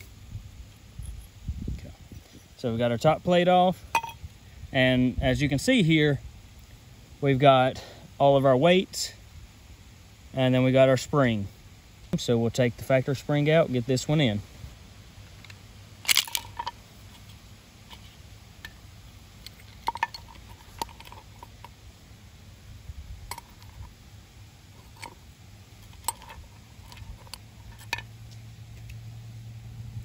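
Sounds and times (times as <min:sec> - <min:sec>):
low steady hum: 0:00.0 - 0:30.0
metallic clicks and clinks: 0:15.4 - 0:16.8, 0:19.4 - 0:21.8, 0:23.3 - 0:23.9, 0:25.8 - 0:28.1.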